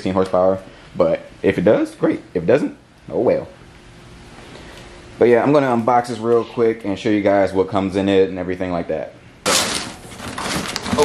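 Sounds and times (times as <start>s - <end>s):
cardboard and packing rustling: 9.5s - 11.0s
cardboard ripping: 9.5s - 11.0s.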